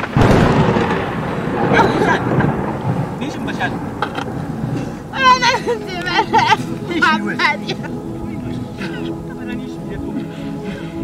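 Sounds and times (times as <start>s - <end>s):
thunderclap: 0.0s - 10.2s.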